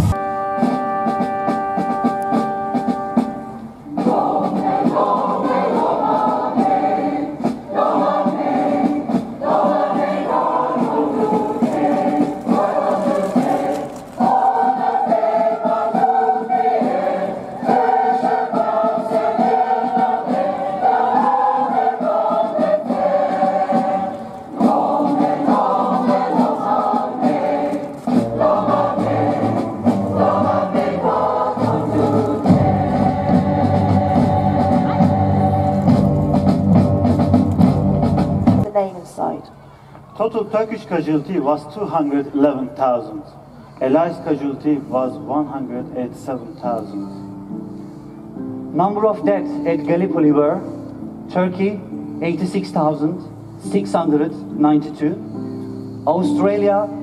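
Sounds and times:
mixed choir singing: 3.9 - 36.8.

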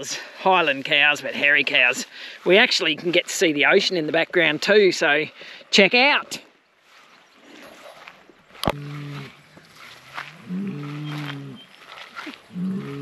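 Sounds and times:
bull bellowing: 8.6 - 11.7, 12.4 - 13.0.

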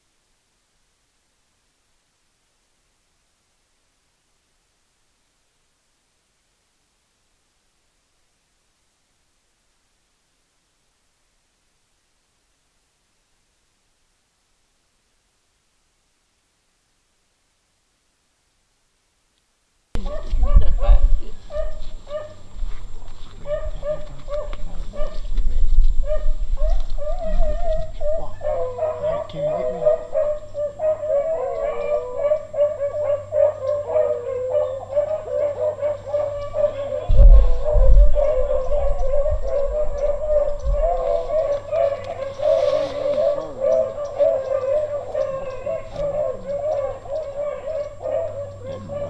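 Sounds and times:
hounds baying: 20.0 - 22.5, 23.3 - 25.4, 26.0 - 49.0.

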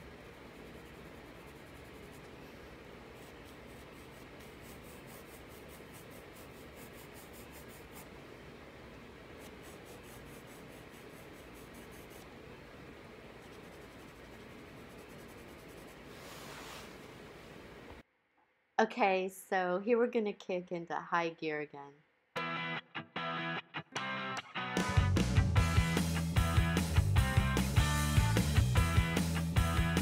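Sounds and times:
pencil scratching on paper: 0.4 - 2.4, 3.0 - 8.1, 9.4 - 12.4, 13.4 - 17.0.

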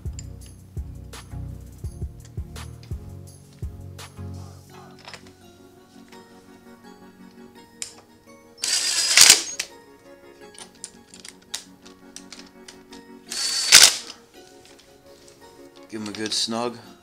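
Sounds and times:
background music: 0.0 - 17.0
cordless power driver running: 8.6 - 9.7, 13.3 - 14.2.

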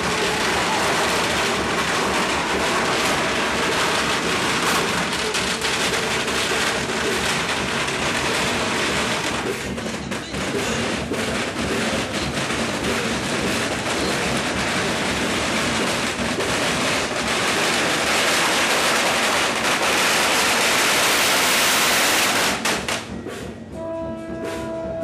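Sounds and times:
firecrackers popping: 0.0 - 23.4.

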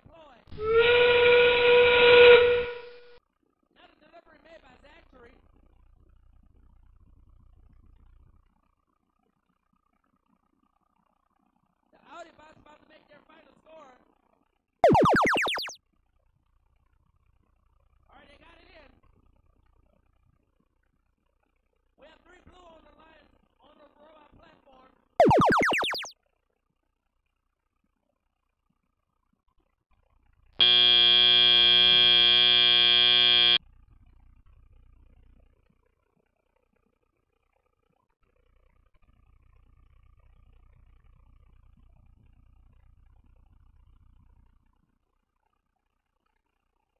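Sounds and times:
springy electronic upward sweep: 14.8 - 15.8, 25.2 - 26.1
loud buzzer blare: 30.6 - 33.6.

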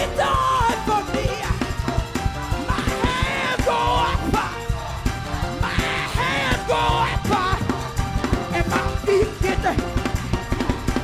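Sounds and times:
drum kit with cymbals: 0.0 - 11.0
electric bass: 0.0 - 11.0.

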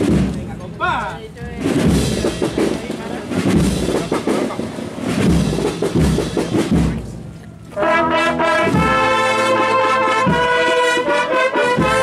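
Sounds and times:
deep booming drums: 0.0 - 12.0.

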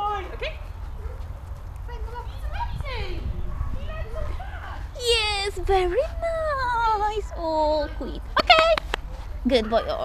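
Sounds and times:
people's voices: 1.8 - 10.0.

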